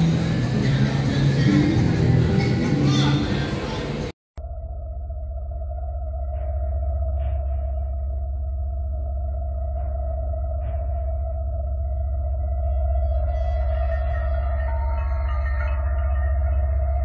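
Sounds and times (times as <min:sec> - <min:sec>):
music: 0:00.0 - 0:04.1
voices: 0:00.0 - 0:04.1, 0:12.6 - 0:17.0
eerie ambient drone: 0:00.0 - 0:17.0.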